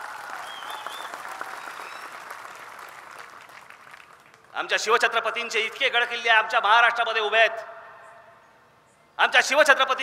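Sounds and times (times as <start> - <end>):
large crowd applauding: 0.0 - 4.5.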